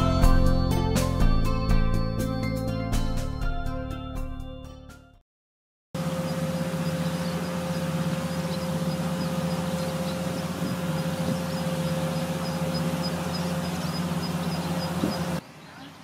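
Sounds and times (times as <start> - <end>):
distant farm machine engine: 6.0 - 16.0
faint high chirping: 6.0 - 16.0.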